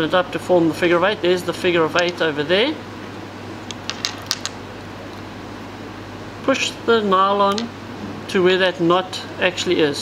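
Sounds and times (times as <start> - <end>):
background hum: 0.0 - 10.0.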